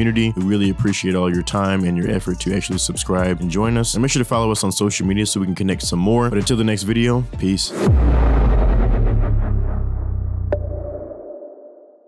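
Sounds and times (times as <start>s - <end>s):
deep bass note: 7.7s - 11.3s.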